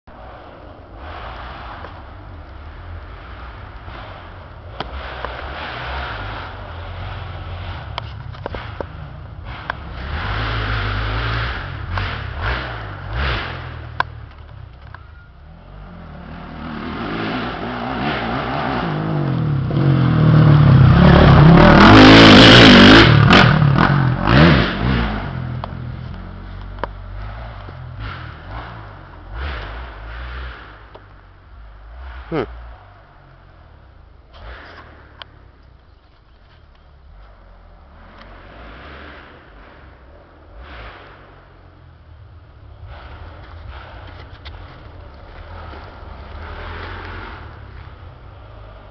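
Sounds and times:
dirt bike engine revving: 0:03.1 - 0:14.0, 0:15.6 - 0:26.4.

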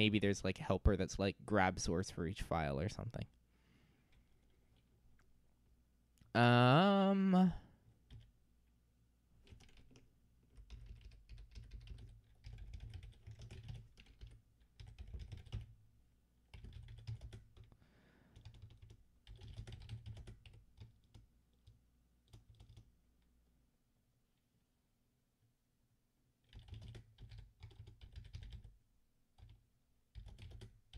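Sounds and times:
faint computer keyboard typing: 0:08.0 - 0:08.4, 0:09.4 - 0:15.8, 0:16.4 - 0:23.3, 0:26.4 - 0:30.9.

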